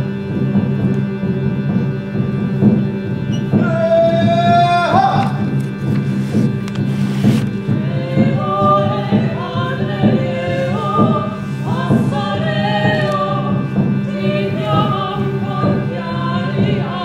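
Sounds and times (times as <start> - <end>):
operatic voices singing: 3.3 - 5.6, 7.5 - 17.0.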